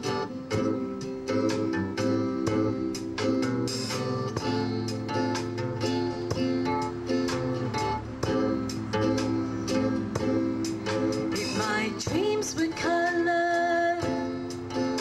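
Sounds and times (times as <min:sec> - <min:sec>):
acoustic guitars playing: 0:00.0 - 0:15.0.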